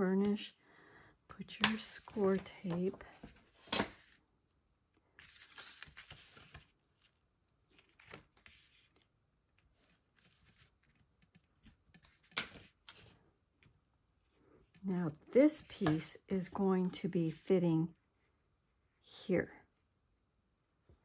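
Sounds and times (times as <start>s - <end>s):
paper rustling: 5.0s - 13.1s.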